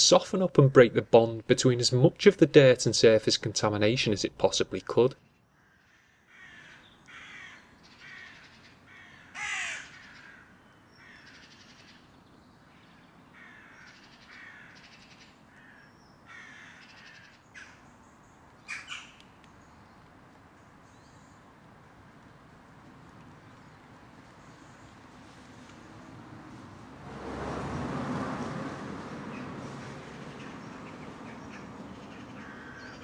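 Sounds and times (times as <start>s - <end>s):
crow cawing: 5.5s - 12.0s, 13.4s - 17.8s, 30.4s - 33.0s.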